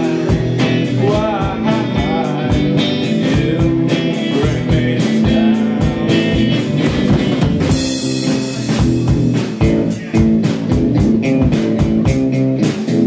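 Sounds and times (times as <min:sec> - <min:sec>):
drum kit steady beat: 0:00.0 - 0:13.0
electric guitar: 0:00.0 - 0:13.0.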